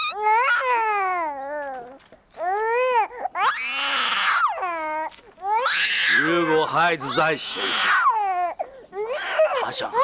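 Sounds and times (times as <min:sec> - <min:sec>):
infant crying: 0:00.0 - 0:10.0.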